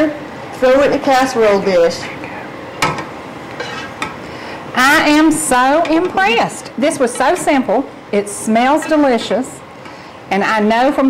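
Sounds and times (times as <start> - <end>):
mixture scraped out of pot: 3.6 - 4.0.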